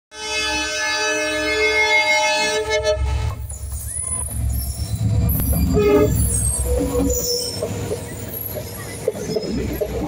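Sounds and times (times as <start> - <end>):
locomotive horn: 0.1 - 3.5, 5.4 - 7.7
train passing rumble: 1.1 - 10.0.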